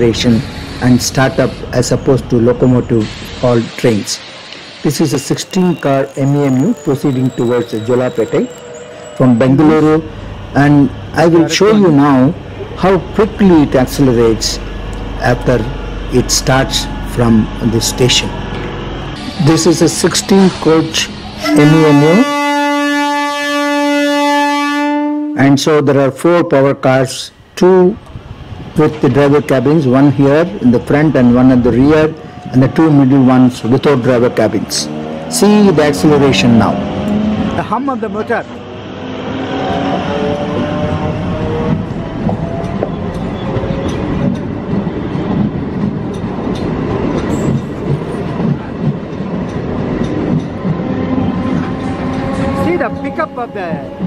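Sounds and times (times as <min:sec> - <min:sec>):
train wheels rumbling: 0:00.0 - 0:24.6, 0:25.4 - 0:54.0
traction motor hum: 0:05.6 - 0:21.4
train horn long note: 0:21.4 - 0:25.5, 0:50.8 - 0:54.0
wheels clicking over rail joints: 0:41.7 - 0:52.5.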